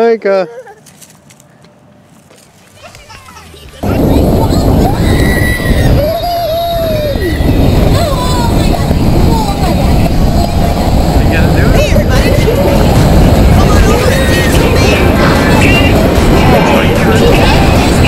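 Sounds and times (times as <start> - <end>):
children's voices and squeals: 2.7 - 10.3
indoor crowd din: 2.8 - 18.0
music: 12.8 - 18.0.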